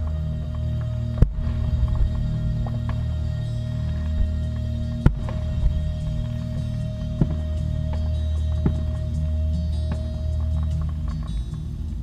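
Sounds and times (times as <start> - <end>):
distant fireworks popping: 0.0 - 12.0
steady low hum: 0.0 - 12.0.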